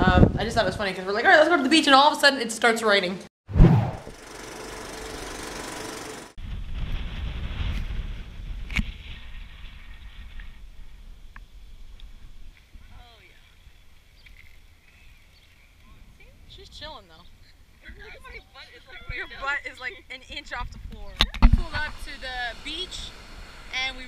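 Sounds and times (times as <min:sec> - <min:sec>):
wind rumble on microphone: 0:00.0 - 0:00.9, 0:06.4 - 0:13.8, 0:20.4 - 0:22.0
hard rain hissing: 0:21.5 - 0:24.0.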